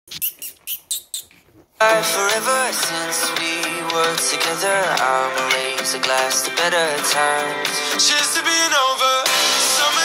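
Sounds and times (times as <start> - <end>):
rubber toy squeaking: 0.1 - 1.5
country music with guitar: 1.8 - 10.0.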